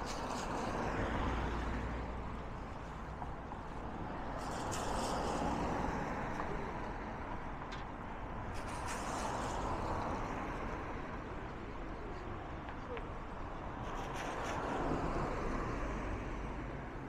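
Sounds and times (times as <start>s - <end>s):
road traffic passing: 0.0s - 17.0s.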